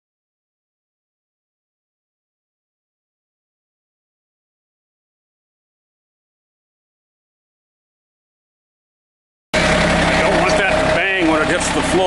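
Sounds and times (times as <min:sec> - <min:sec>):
steady tone: 0:09.6 - 0:12.0
tractor diesel engine running: 0:09.6 - 0:12.0.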